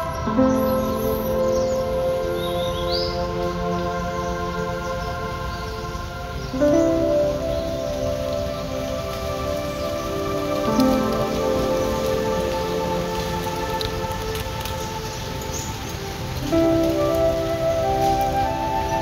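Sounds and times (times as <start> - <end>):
rain-like hiss: 0.0 - 19.0
sustained music chords: 0.0 - 19.0.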